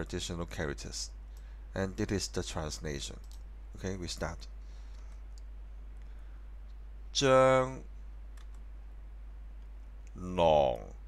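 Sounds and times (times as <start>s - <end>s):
faint clicks: 3.2s - 3.5s, 4.9s - 6.8s, 8.3s - 8.7s
man pronouncing a syllable: 10.2s - 11.0s.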